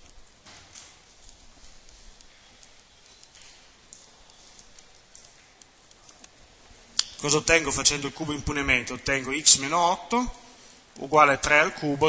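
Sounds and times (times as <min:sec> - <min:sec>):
low steady hiss: 0:00.0 - 0:12.0.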